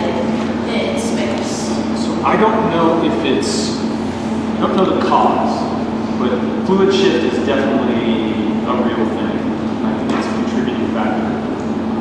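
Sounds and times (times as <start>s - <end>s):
steady low hum: 0.0s - 12.0s
man talking: 2.0s - 3.9s, 4.5s - 11.5s.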